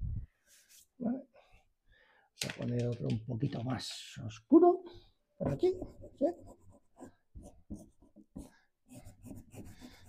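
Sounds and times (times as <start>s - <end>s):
crayon scribbling on paper: 5.8s - 10.0s.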